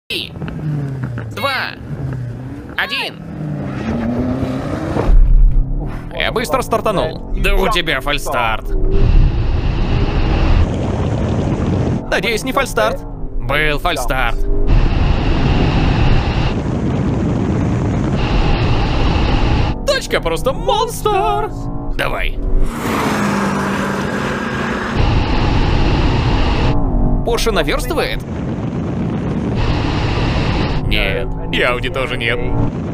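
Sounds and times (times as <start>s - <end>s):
engines and tyres rushing: 0.2s - 32.9s
wind buffeting microphone: 4.1s - 23.6s, 24.6s - 32.9s.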